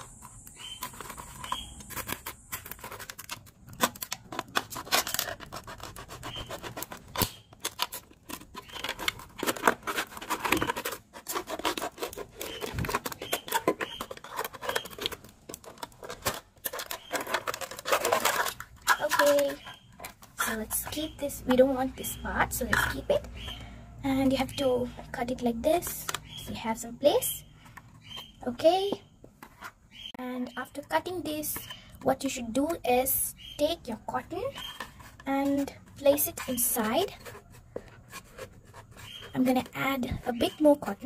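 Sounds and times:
plastic crinkling: 0.0s - 21.3s
knife cutting plastic bottle: 0.0s - 23.6s, 33.5s - 41.0s.

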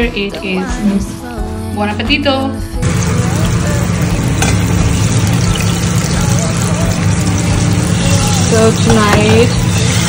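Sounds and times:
fish sizzling in hot oil: 2.8s - 10.0s.

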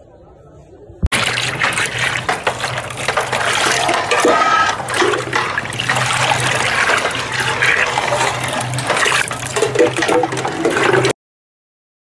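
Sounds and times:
liquid sloshing and splashing: 1.1s - 11.2s.

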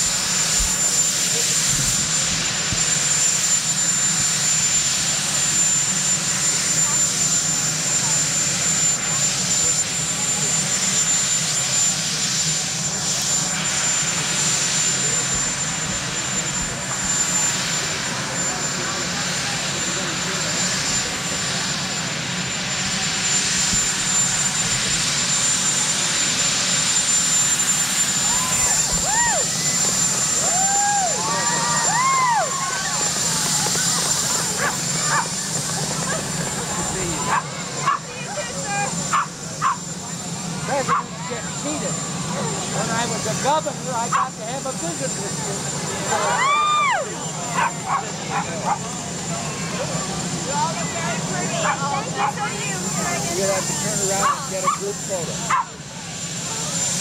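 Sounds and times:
crowd chatter: 0.0s - 57.0s
helicopter turbine engines whining: 0.0s - 57.0s
excited calls from crowd: 27.1s - 42.8s, 45.8s - 55.9s.

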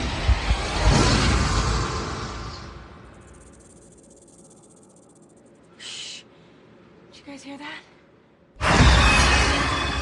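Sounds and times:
loud sound tail: 0.0s - 3.3s
crickets chirring: 3.0s - 6.0s.

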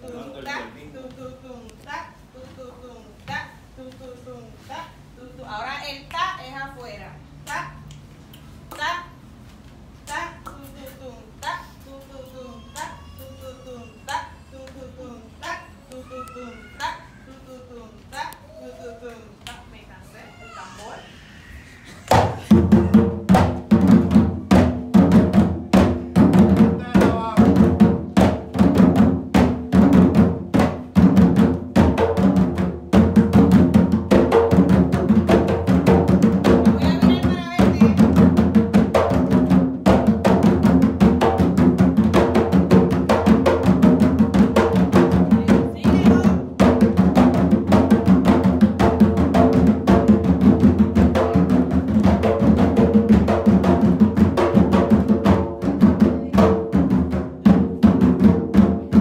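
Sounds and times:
hand drums playing fast rhythm: 22.1s - 59.0s.

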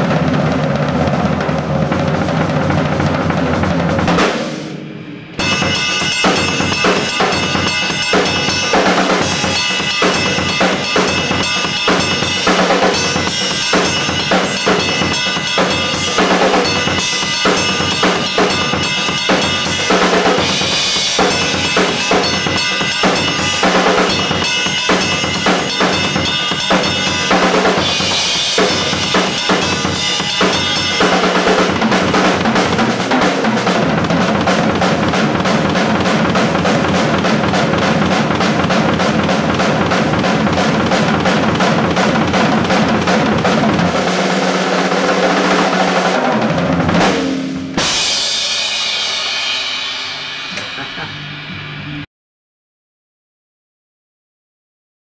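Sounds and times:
drum solo: 0.0s - 52.1s
cymbals ringing: 4.6s - 33.0s, 47.1s - 52.0s.

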